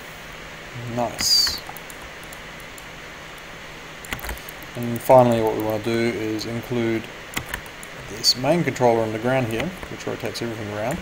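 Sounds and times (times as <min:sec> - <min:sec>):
background hiss: 0:00.0 - 0:11.0
faint low hum: 0:00.0 - 0:11.0
faint ticks: 0:01.2 - 0:05.8.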